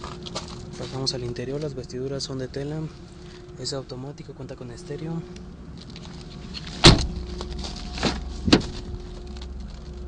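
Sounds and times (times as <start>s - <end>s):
car door shutting: 6.6s - 7.3s, 8.0s - 9.0s.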